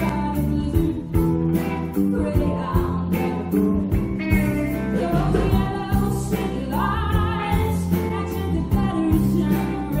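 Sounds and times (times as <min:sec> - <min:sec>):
band playing guitars and beat: 0:00.0 - 0:10.0
woman singing: 0:00.0 - 0:10.0.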